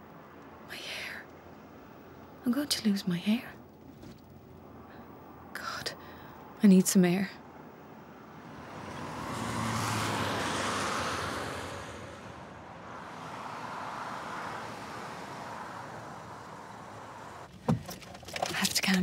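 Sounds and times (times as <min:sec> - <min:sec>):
fainter vehicle passing: 0:07.4 - 0:17.5
car passing by: 0:08.0 - 0:17.5.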